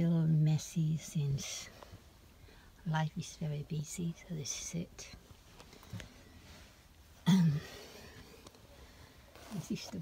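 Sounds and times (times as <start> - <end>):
person clearing throat: 7.2 - 7.8.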